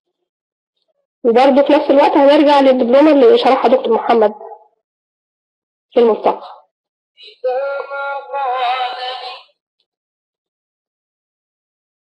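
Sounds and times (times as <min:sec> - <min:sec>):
person holding a drawn-out vocal sound: 0:07.2 - 0:09.4.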